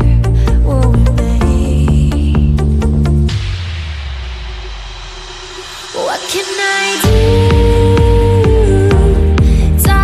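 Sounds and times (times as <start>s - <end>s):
noisy whooshing rumble: 0.0s - 9.6s
backing music: 0.0s - 10.0s.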